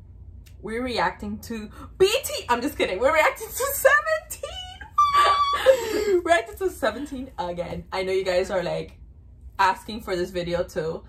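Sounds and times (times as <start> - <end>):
women laughing: 4.9 - 6.4.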